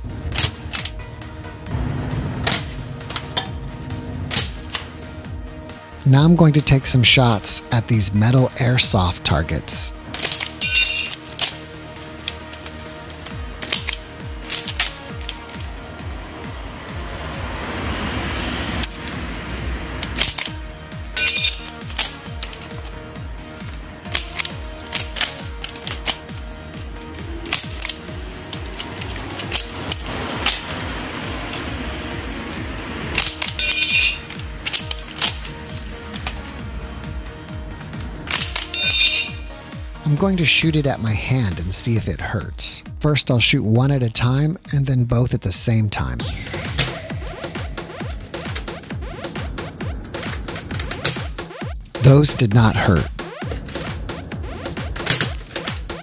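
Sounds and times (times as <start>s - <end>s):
background music: 0.0s - 56.0s
metal targets being hit: 1.7s - 5.5s, 10.1s - 11.7s, 20.1s - 23.0s, 33.1s - 36.5s, 38.2s - 39.6s.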